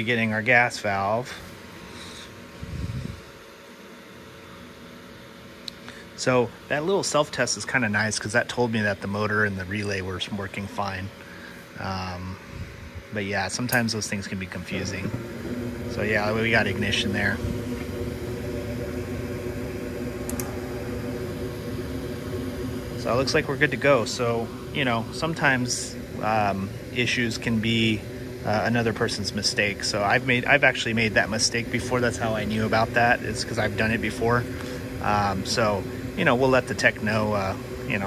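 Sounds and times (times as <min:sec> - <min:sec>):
furnace draft motor whooshing: 0:00.0 - 0:38.0.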